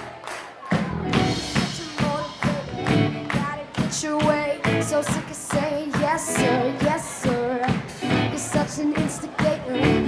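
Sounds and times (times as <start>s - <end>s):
drum kit beat: 0.7s - 10.0s
electric guitar: 0.8s - 10.0s.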